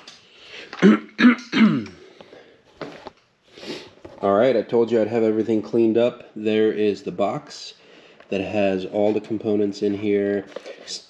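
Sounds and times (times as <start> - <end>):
man coughing: 0.8 - 2.0.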